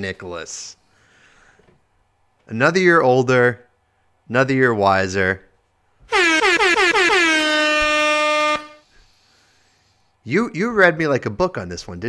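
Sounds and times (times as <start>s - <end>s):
air horn blasts: 6.1s - 9.0s.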